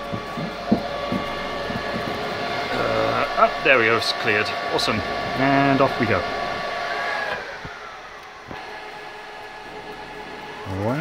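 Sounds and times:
server cooling fans whining: 0.0s - 11.0s.

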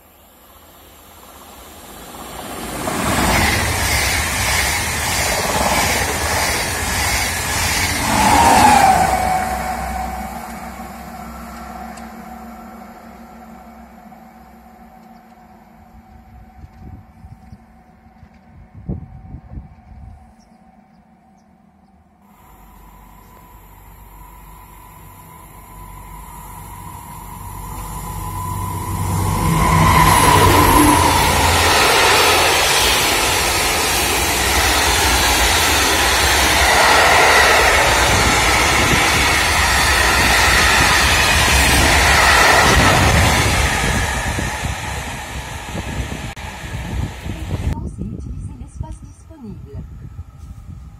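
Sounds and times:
freight train passing: 0.0s - 50.9s
train wheel and wagon noise: 0.0s - 50.9s.

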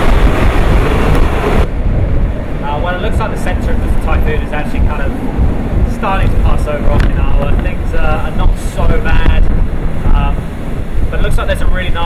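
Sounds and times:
wind buffeting the microphone: 0.0s - 12.0s
man talking: 2.6s - 5.2s, 5.8s - 10.5s, 11.1s - 12.0s.

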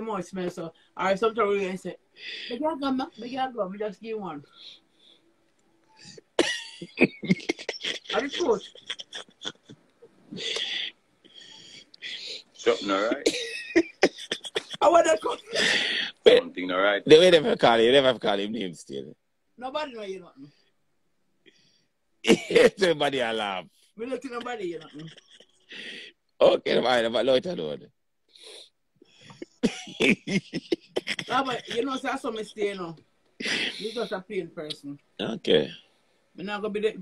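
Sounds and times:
person breathing: 2.2s - 2.6s, 10.3s - 13.0s, 15.5s - 16.2s, 25.7s - 26.2s, 33.4s - 34.1s
person coughing: 6.4s - 9.7s, 12.7s - 14.9s, 22.3s - 22.8s, 29.4s - 31.8s
person laughing breathily: 6.8s - 14.8s, 29.2s - 31.8s, 33.4s - 34.1s.

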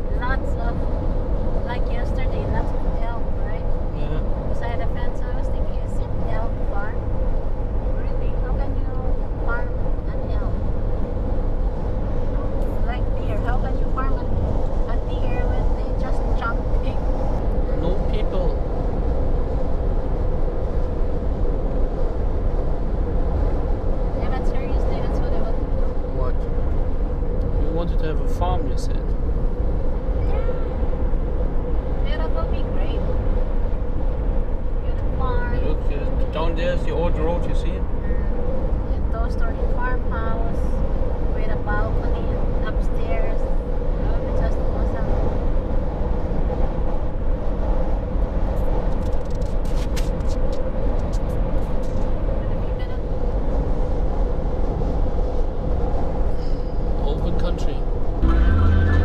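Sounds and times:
car road noise at highway speed: 0.0s - 59.0s.

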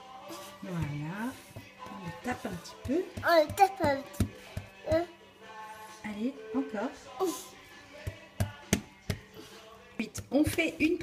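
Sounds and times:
dough slapped on work surface: 2.7s - 4.9s, 8.0s - 9.3s.

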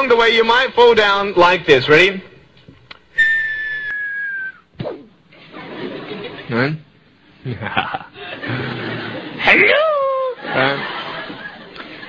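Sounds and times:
whistle sliding down: 3.2s - 4.7s.

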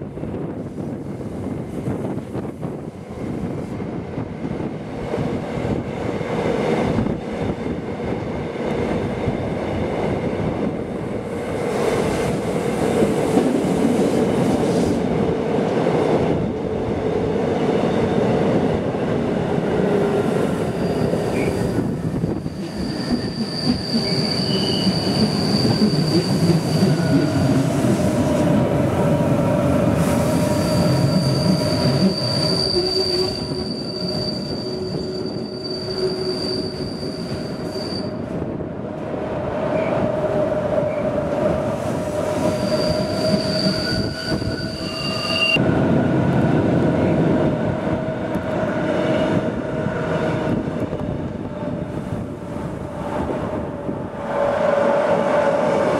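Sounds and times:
train wheels squealing: 20.7s - 27.5s, 30.1s - 38.3s, 42.1s - 45.6s
train running gear rumbling: 45.6s - 55.9s.

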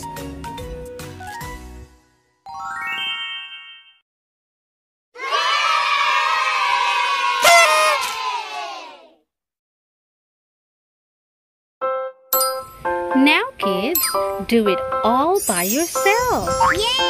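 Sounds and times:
children cheering: 5.2s - 9.1s.

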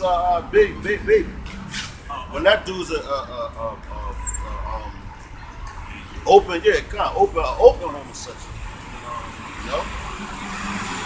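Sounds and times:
car passing by: 0.7s - 2.2s, 7.8s - 11.0s.

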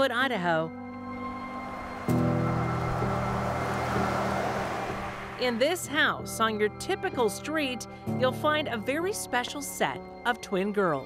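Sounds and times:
background music low chord: 0.0s - 11.0s
pickup truck driving past: 1.0s - 5.8s.

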